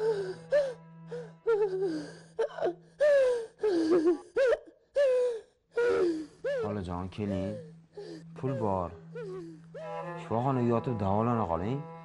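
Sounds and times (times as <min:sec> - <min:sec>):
woman sobbing: 0:00.0 - 0:09.9
soft background music: 0:00.0 - 0:12.0.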